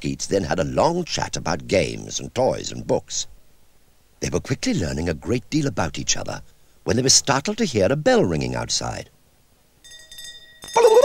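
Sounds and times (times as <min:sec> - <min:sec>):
fire engine bell ringing: 0:09.8 - 0:11.0.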